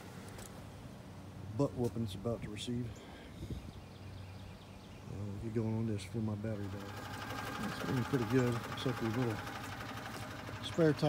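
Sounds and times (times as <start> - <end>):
golf cart low hum: 1.2 - 11.0.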